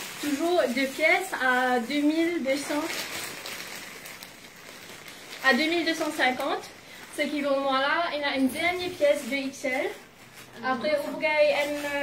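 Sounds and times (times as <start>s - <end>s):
plastic bag rustling: 0.0s - 12.0s.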